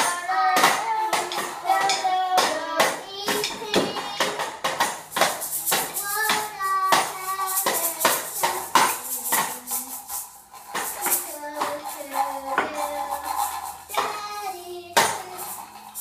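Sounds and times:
toy percussion jingling: 0.0 - 16.0.

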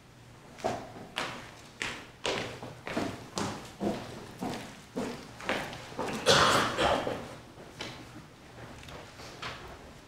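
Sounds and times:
footsteps on wooden floor: 0.6 - 6.2.

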